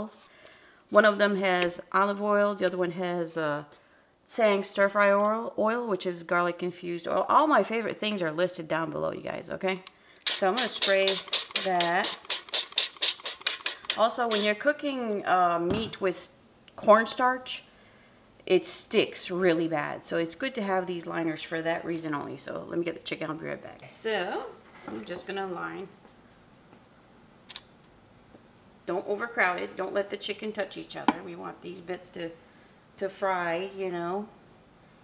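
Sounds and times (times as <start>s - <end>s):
spray bottle hissing sprays: 10.2s - 14.6s.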